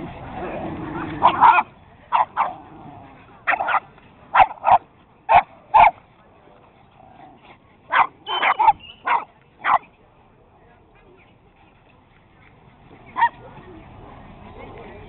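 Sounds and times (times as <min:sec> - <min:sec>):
dogs play-barking: 0:00.4 - 0:06.1, 0:06.8 - 0:09.9.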